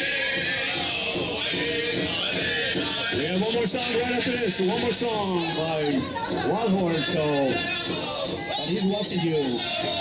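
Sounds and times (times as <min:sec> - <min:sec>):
crowd voices: 0:00.0 - 0:10.0
group singing high sliding phrases: 0:00.0 - 0:10.0.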